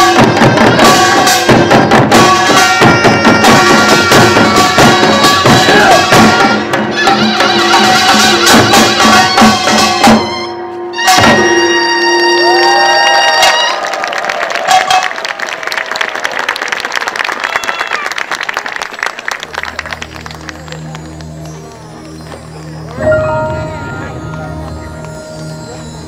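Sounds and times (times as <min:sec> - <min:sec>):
audience applauding: 0:12.4 - 0:26.0
percussion band final stroke: 0:19.7 - 0:26.0
gong ringing: 0:19.8 - 0:26.0.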